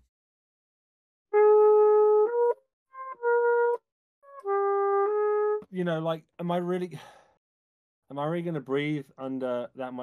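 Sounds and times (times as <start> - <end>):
trumpet playing held notes: 1.3 - 5.7.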